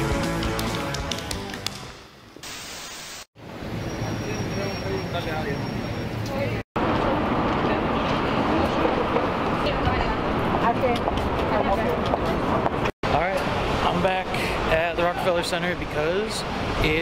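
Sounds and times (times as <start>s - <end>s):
city street traffic: 3.4s - 17.0s.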